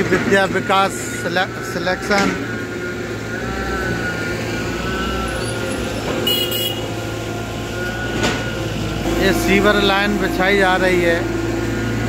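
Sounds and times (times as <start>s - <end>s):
traffic engine rumble: 0.0s - 12.0s.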